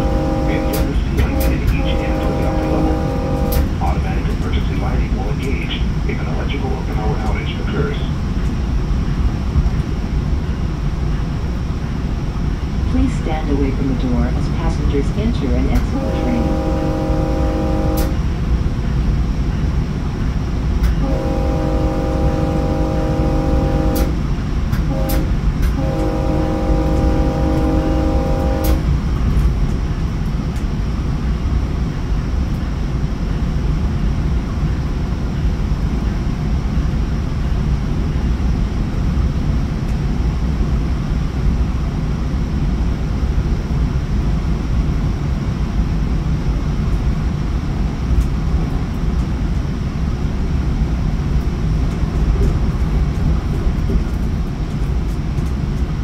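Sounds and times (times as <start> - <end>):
train horn blasts: 0.0 - 4.0, 15.7 - 18.3, 20.9 - 29.0
train wheels rumbling on rails: 0.0 - 56.0.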